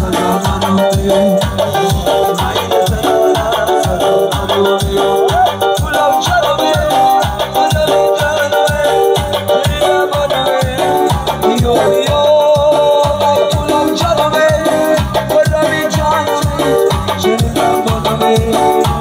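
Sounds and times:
electronic keyboard music: 0:00.0 - 0:19.0
man singing into a microphone: 0:00.0 - 0:19.0.

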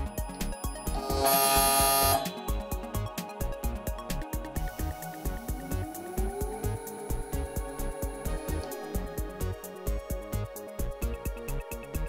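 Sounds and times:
background music with beat: 0:00.0 - 0:12.0
loud buzzing tone: 0:00.9 - 0:02.7.

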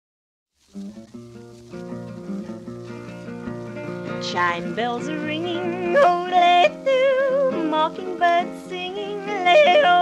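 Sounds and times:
solo country guitar: 0:00.6 - 0:10.0.

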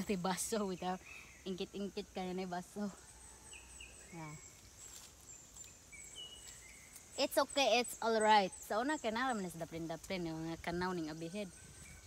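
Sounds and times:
rural outdoor ambience: 0:00.0 - 0:12.0.

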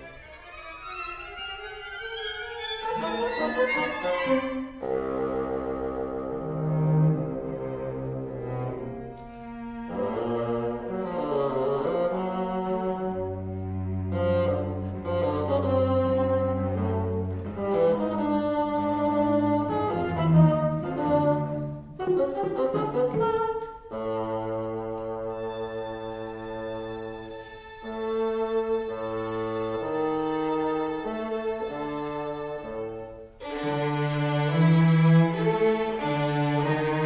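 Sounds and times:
bassoon and strings playing: 0:00.0 - 0:37.0.

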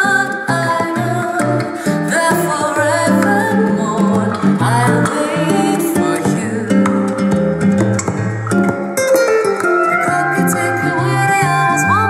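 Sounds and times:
guitar song over speakers: 0:00.0 - 0:12.0.

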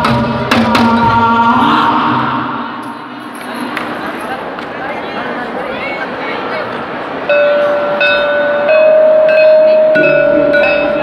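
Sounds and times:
low tone: 0:07.3 - 0:11.0
struck metal percussion ringing: 0:07.3 - 0:11.0.

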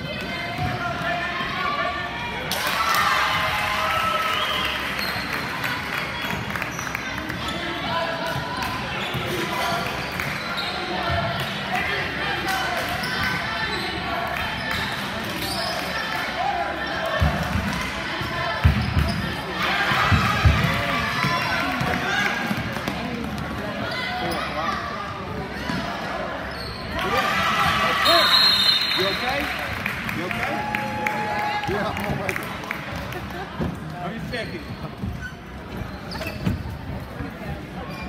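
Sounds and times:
spectators chatter: 0:00.0 - 0:38.0.

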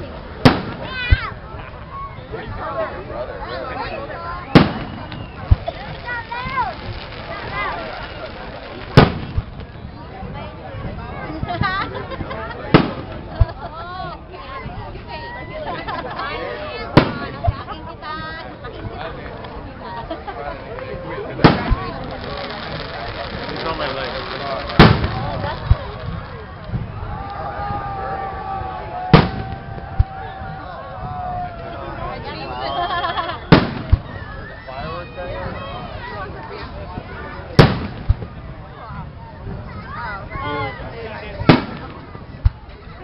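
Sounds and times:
people chattering: 0:00.0 - 0:43.0
fireworks bangs: 0:00.3 - 0:01.4, 0:04.3 - 0:11.7, 0:12.7 - 0:13.7, 0:16.8 - 0:17.8, 0:20.9 - 0:28.0, 0:29.0 - 0:31.3, 0:33.0 - 0:34.6, 0:36.9 - 0:38.7, 0:41.3 - 0:42.7.

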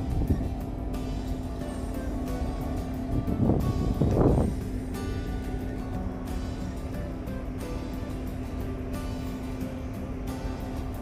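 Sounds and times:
background music with steady beat: 0:00.0 - 0:11.0
low rumble: 0:00.0 - 0:11.0
wind gusts on microphone: 0:03.1 - 0:04.9.

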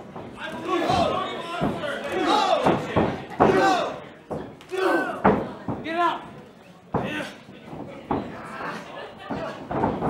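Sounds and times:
wrestlers' sharp impacts: 0:00.0 - 0:10.0
loud shouting voices: 0:00.4 - 0:04.1, 0:04.7 - 0:05.4.

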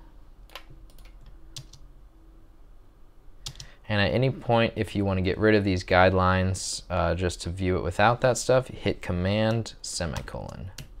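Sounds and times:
computer keyboard clicks: 0:00.5 - 0:01.8, 0:03.4 - 0:03.7.

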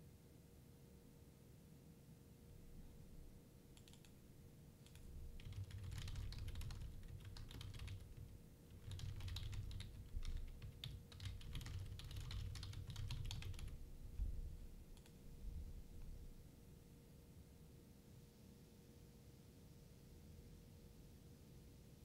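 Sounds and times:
faint steady hum: 0:00.0 - 0:22.0
keyboard typing clicks: 0:03.8 - 0:04.2, 0:04.8 - 0:13.8, 0:15.0 - 0:15.2.

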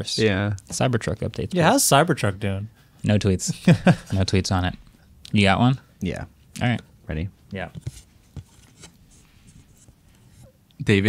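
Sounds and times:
cards rustling and tapping: 0:07.5 - 0:10.3.

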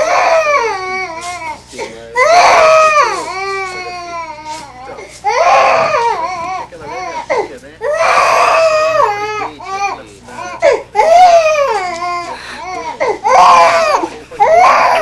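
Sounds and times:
newborn baby crying: 0:00.0 - 0:15.0.

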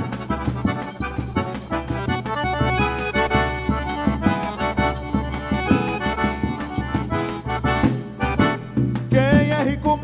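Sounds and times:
accordion melody: 0:00.0 - 0:10.0
bass drum rhythm: 0:00.0 - 0:10.0.

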